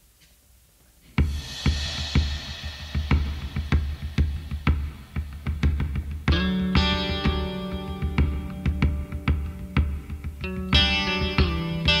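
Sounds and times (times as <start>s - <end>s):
drum kit beat: 1.2s - 12.0s
electric guitar: 3.1s - 12.0s.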